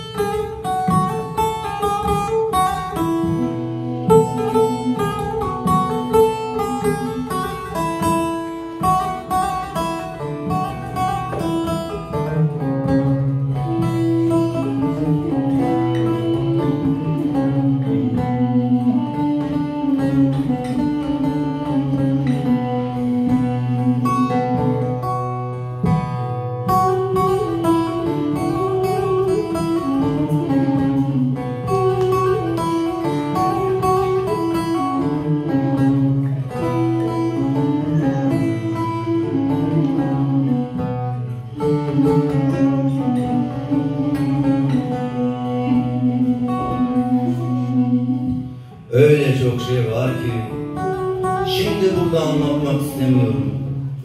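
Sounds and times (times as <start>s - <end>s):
wind instrument slow melody: 0.0s - 25.7s, 26.6s - 52.8s
plucked lute: 0.0s - 54.0s.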